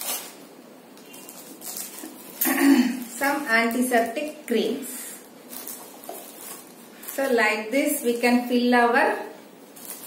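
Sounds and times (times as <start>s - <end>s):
faint rustling of packets: 0.0s - 7.6s, 9.7s - 10.0s.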